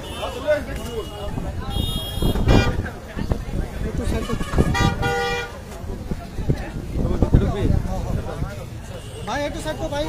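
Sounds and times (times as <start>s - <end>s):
vehicle horn honk: 0.0s - 2.8s, 4.2s - 5.5s
crowd of men talking: 0.0s - 10.0s.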